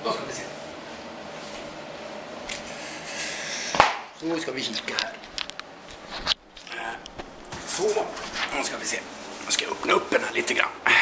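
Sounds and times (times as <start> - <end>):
rustling movement noise: 0.2 - 3.9, 4.7 - 10.6.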